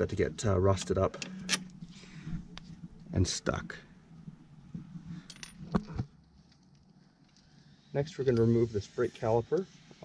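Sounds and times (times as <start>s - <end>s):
light metallic clinks and knocks: 5.2s - 5.9s.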